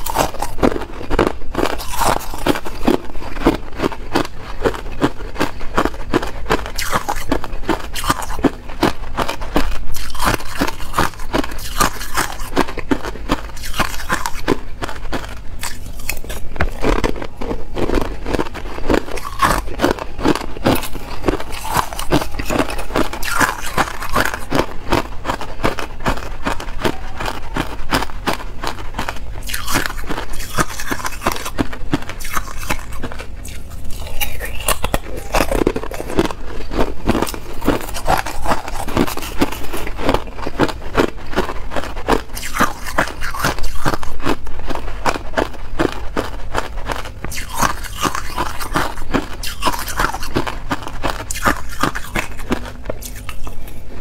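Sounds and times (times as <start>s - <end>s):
ice cubes crunched between teeth: 0.0s - 53.9s.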